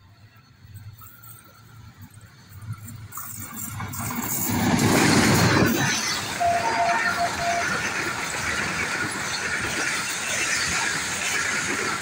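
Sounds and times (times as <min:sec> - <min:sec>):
train coaches rolling on track: 0:00.0 - 0:12.0
locomotive passing at speed: 0:00.4 - 0:12.0.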